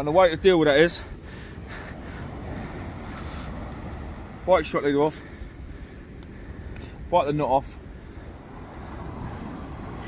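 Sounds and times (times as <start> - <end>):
surf on beach: 0.0 - 10.0
wind rumbling on microphone: 0.0 - 10.0.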